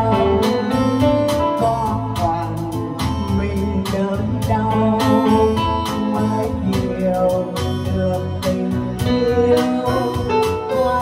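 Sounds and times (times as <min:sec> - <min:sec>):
electronic keyboard accompaniment: 0:00.0 - 0:11.0
woman singing into microphone: 0:09.0 - 0:11.0.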